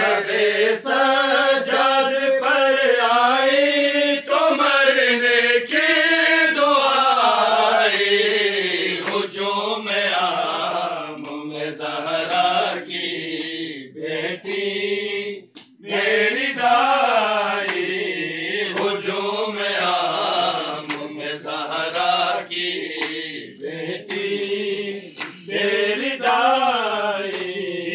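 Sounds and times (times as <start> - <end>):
men chanting a lament: 0.0 - 27.9.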